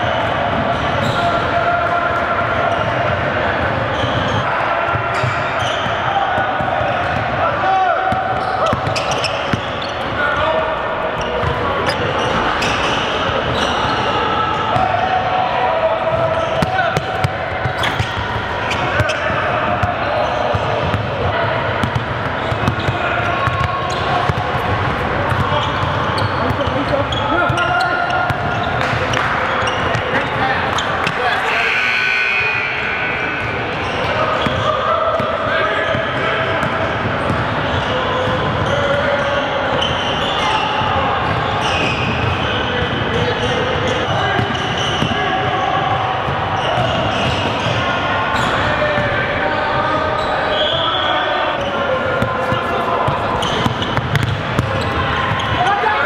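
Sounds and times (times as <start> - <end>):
voices calling out in gym: 0.0 - 56.0.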